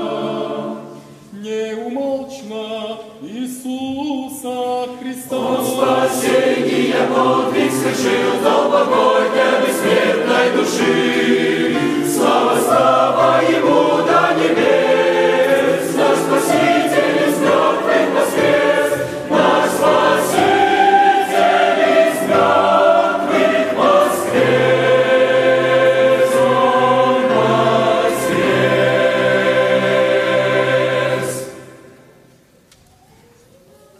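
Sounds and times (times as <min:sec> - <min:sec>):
mixed choir singing a hymn: 0:00.0 - 0:32.2
piano accompaniment: 0:05.3 - 0:32.4.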